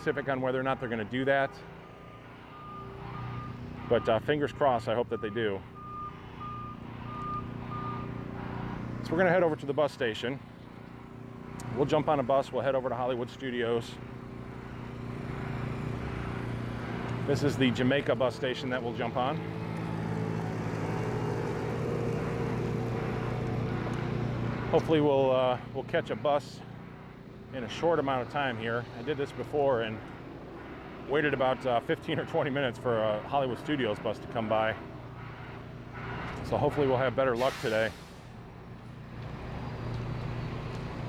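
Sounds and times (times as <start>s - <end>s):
heavy engine running: 0.0s - 41.0s
reversing alarm beeps: 1.8s - 4.3s, 5.1s - 8.2s
vehicle engine driving past: 13.9s - 25.7s.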